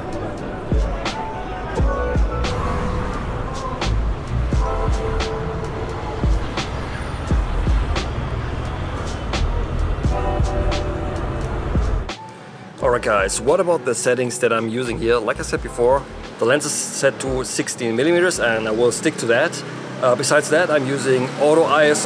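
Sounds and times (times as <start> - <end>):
music with steady beat and bass: 0.0 - 5.6, 6.2 - 8.2, 9.0 - 13.5, 14.9 - 16.4.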